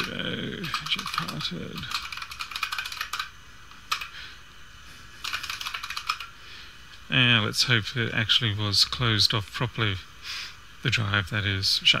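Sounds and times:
typing on computer keyboard: 0.0s - 4.2s, 5.2s - 6.3s.

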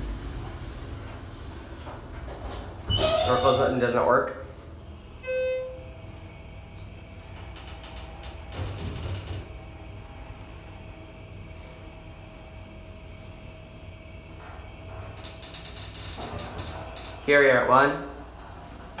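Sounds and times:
elevator drive whine: 0.0s - 17.3s
elevator rattling and clicking: 7.1s - 9.6s, 14.9s - 17.4s.

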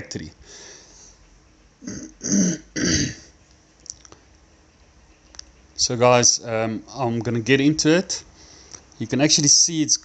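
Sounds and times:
man coughing: 1.8s - 3.3s
faint clicks: 3.5s - 5.6s.

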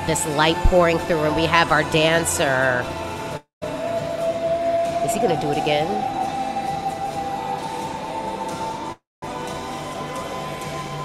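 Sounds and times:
backing music: 0.0s - 11.0s
man singing a long high note: 3.6s - 5.4s.

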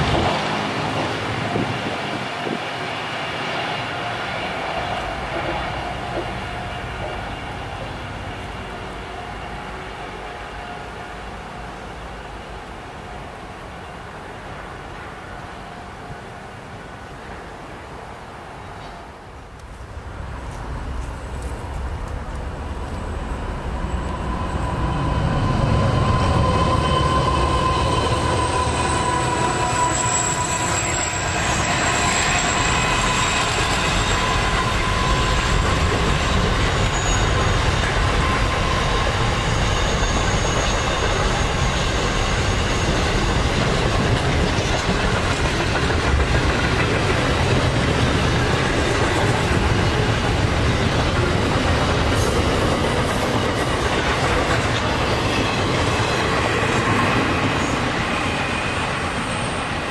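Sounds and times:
freight train rolling rumble: 0.0s - 59.9s
thin high squeal: 23.8s - 43.2s
wheels clacking over rail joints: 26.0s - 57.7s.

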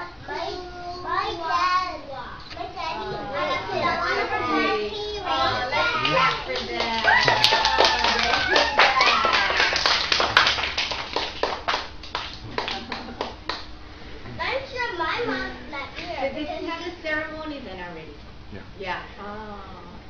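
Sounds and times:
rhythmic hand clapping: 5.3s - 13.8s.

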